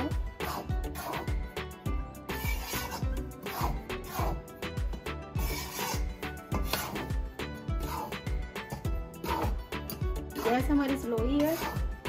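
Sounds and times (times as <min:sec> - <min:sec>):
background music with steady beat: 0:00.0 - 0:12.0
metal spatula scraping flour in pan: 0:00.4 - 0:04.7, 0:05.3 - 0:12.0.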